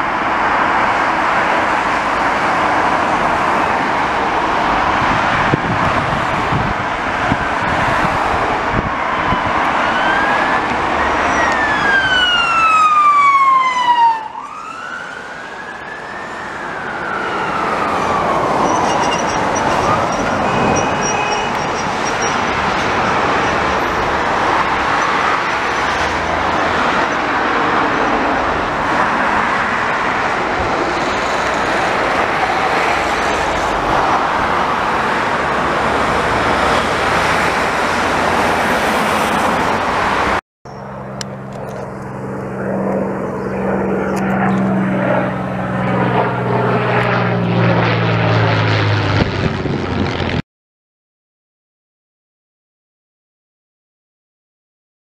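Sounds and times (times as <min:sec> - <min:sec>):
ambulance siren: 0:00.0 - 0:40.4
heavy traffic noise: 0:00.0 - 0:50.4
propeller plane engine drone: 0:00.0 - 0:50.4.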